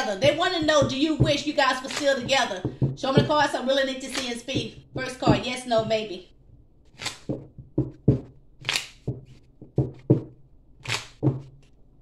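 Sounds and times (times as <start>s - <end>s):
deck knocking on table: 0.2s - 3.3s, 7.2s - 11.6s
cards being shuffled: 1.8s - 3.0s, 4.0s - 4.4s, 6.9s - 11.8s.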